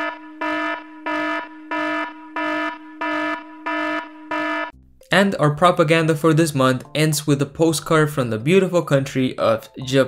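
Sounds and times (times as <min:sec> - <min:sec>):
pulsing buzzer alarm: 0:00.0 - 0:04.7.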